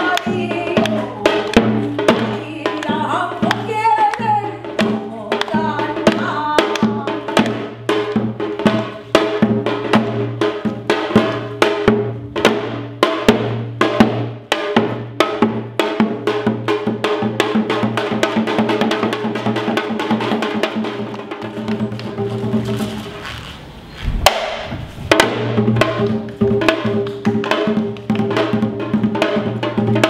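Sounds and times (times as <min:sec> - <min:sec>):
drum strokes: 0:00.0 - 0:30.0.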